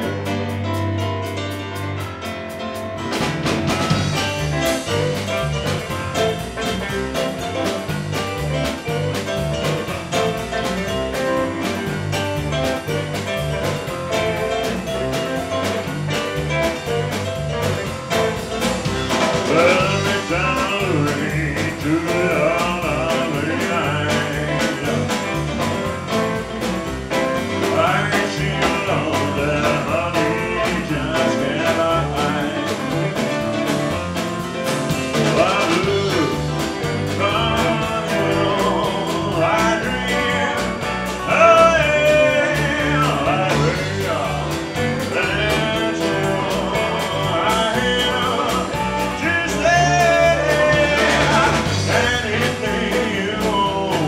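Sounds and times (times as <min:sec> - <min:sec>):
live rock band playing: 0:00.0 - 0:54.0
male lead vocal: 0:19.0 - 0:26.1, 0:27.3 - 0:33.9, 0:35.0 - 0:54.0.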